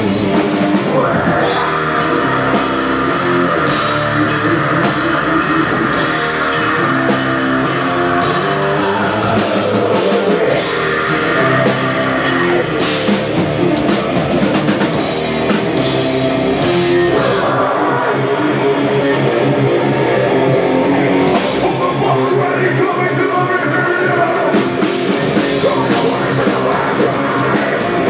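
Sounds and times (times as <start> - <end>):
drum kit: 0.0 - 18.1, 21.0 - 23.1, 24.4 - 28.0
bass guitar: 0.0 - 28.0
electric guitars: 0.0 - 28.0.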